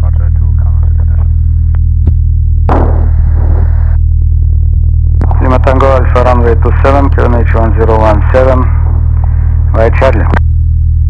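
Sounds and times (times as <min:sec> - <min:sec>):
propeller aircraft engine droning: 0:00.0 - 0:11.0.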